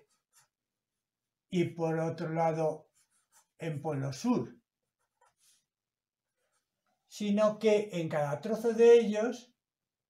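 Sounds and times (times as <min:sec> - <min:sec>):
marker pen drawing on paper: 0:00.0 - 0:00.7, 0:02.6 - 0:03.9, 0:04.7 - 0:06.8.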